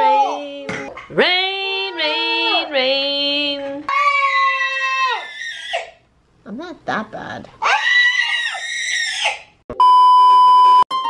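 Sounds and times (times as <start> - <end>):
child screaming playfully: 3.9 - 5.9, 7.6 - 9.5
loud steady test tone beep: 9.7 - 11.0.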